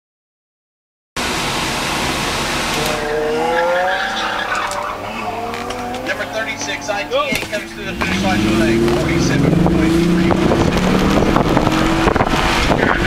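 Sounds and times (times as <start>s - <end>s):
engine rush: 1.2s - 13.0s
outdoor noise: 1.2s - 13.0s
car tires squealing: 2.7s - 13.0s.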